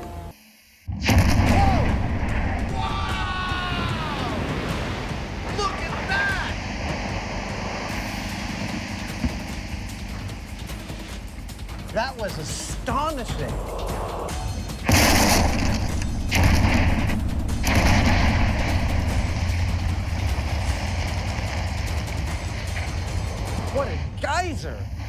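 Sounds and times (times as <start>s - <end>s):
underwater explosion boom: 0.9s - 5.6s, 14.8s - 22.7s
rumbling rush of water: 1.1s - 13.3s, 14.8s - 23.9s.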